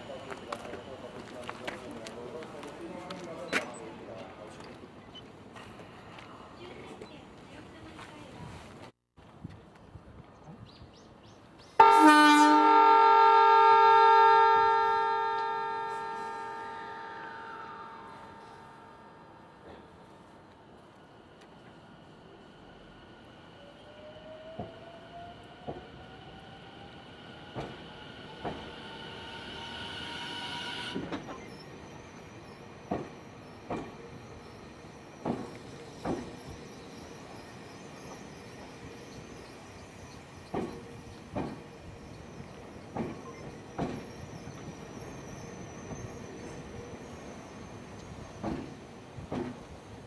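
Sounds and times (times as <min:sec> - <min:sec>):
train horn: 0:11.8 - 0:19.4
train running gear rumble: 0:30.9 - 0:50.0
train wheels clunking over rail joint: 0:32.8 - 0:34.2, 0:35.2 - 0:36.6, 0:40.4 - 0:44.8, 0:47.9 - 0:49.8.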